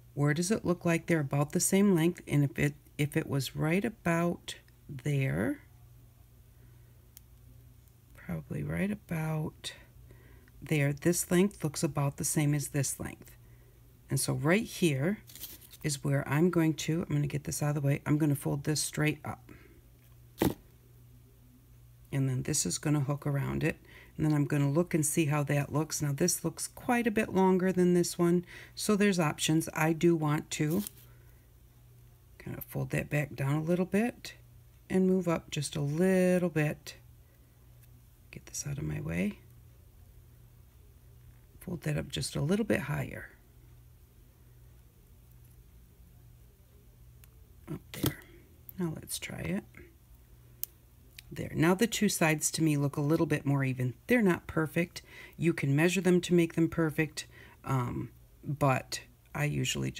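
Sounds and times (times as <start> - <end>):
faint steady low hum: 0.0 - 59.9.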